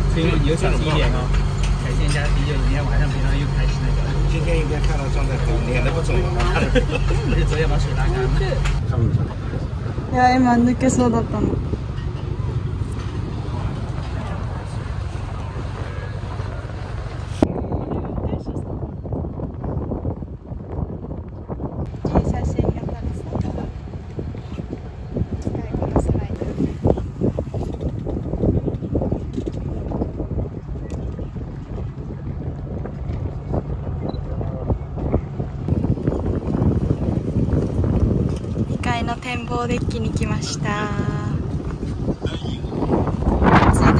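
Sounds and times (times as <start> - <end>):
boat engine rumble: 0.0 - 43.9
wind on microphone: 0.0 - 43.9.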